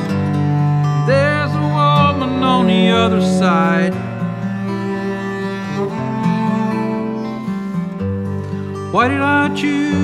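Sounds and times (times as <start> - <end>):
cello bowed low notes: 0.0 - 8.9.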